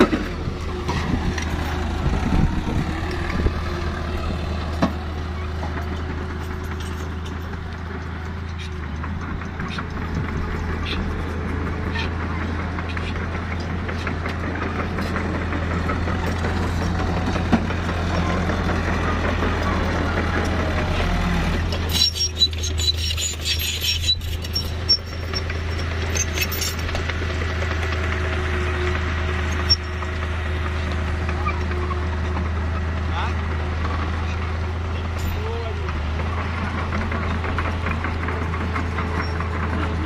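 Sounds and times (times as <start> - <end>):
diesel engine running: 0.0 - 40.0
metallic clinks and rattles: 5.9 - 7.6, 22.7 - 27.0.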